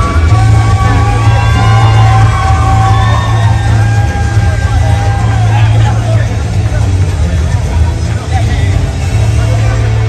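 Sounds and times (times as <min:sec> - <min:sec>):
crowd voices talking: 0:00.0 - 0:10.0
loud music with heavy bass: 0:00.0 - 0:10.0.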